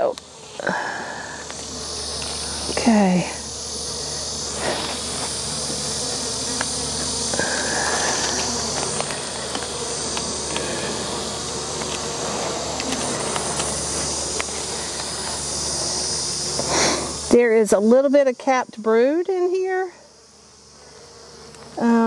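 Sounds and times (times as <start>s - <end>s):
faint clicks of hive frames: 0.0s - 2.9s, 3.5s - 16.9s, 19.4s - 21.9s
bees buzzing: 0.0s - 22.0s.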